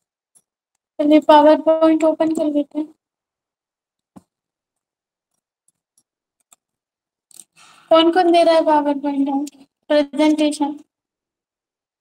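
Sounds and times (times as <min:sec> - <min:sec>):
person speaking: 0:01.0 - 0:03.0, 0:07.3 - 0:10.9.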